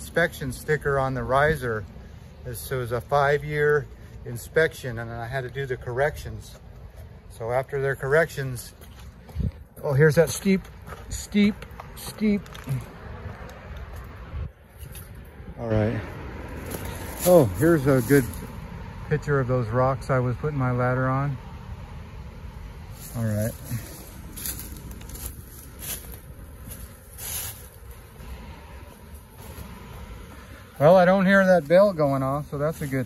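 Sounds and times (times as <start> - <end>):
outdoor background noise: 0.0 - 33.0
footsteps crunching on dry leaves: 16.5 - 18.5, 22.9 - 33.0.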